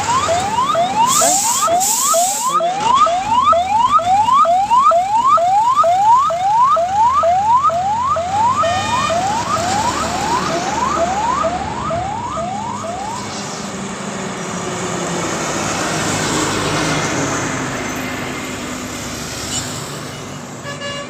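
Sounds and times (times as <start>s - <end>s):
police siren yelping: 0.0s - 13.4s
highway traffic rumble: 0.0s - 21.0s.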